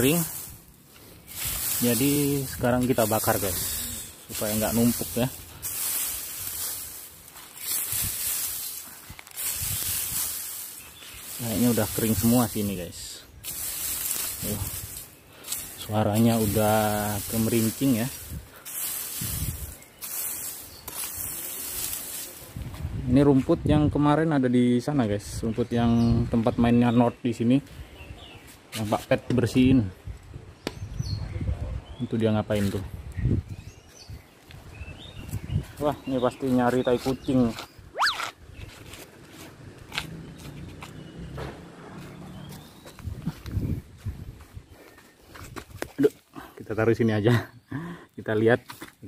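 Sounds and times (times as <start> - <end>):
rake rustling through dry grass: 0.0 - 23.1, 33.8 - 41.2, 42.0 - 46.0.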